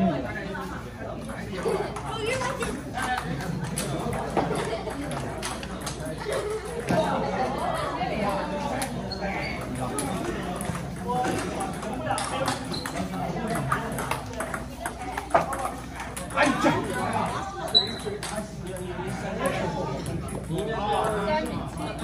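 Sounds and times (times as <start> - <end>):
people talking: 0.0 - 22.0
table tennis balls clicking: 1.6 - 7.6, 8.7 - 22.0.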